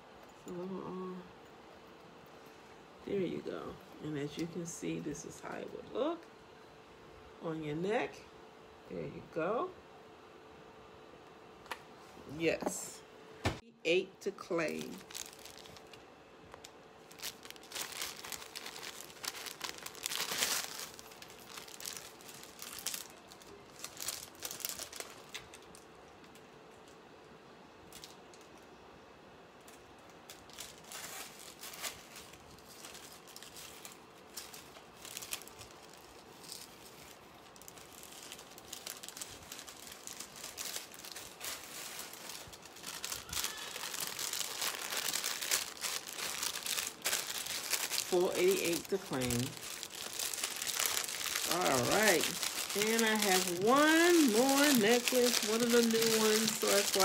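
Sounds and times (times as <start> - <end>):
plastic packaging crinkling: 14.4 - 27.0, 27.8 - 28.6, 29.6 - 57.0.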